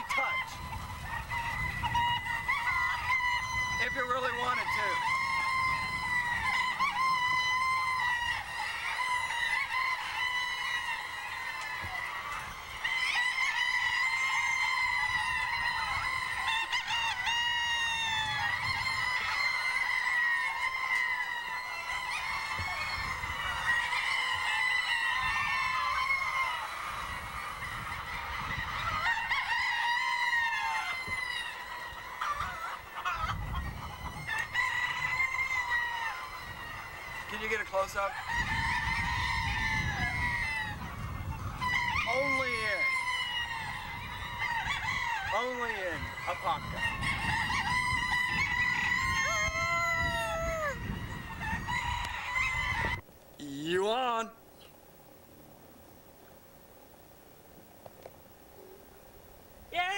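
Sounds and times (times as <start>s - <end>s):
hens clucking: 0.0s - 53.8s.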